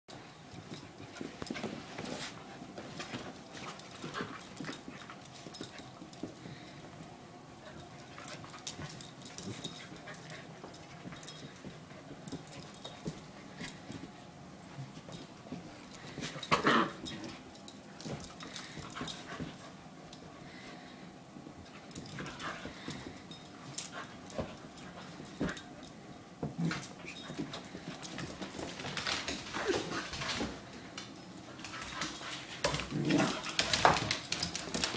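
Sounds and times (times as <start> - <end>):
dogs play-fighting vocalizing: 15.9 - 19.6, 31.7 - 34.9.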